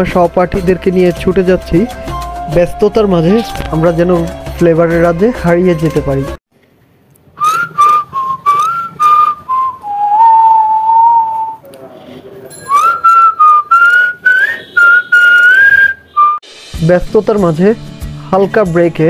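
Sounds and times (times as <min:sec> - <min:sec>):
whistled tune: 0:07.4 - 0:11.6, 0:12.6 - 0:16.4.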